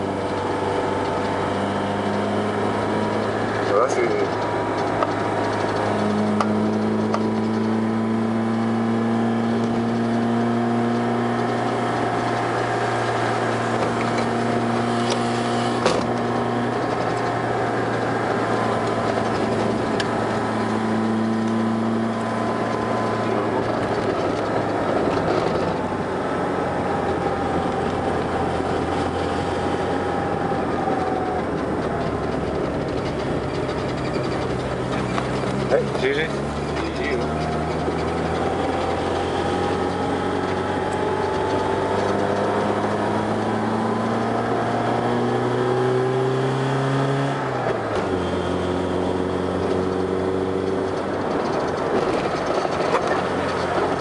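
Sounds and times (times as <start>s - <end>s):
car engine in low gear: 0.0s - 54.0s.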